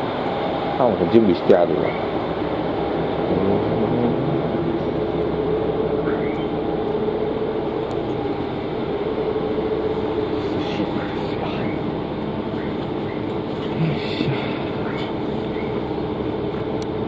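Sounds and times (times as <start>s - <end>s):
diesel railcar engine hum: 0.0s - 17.0s.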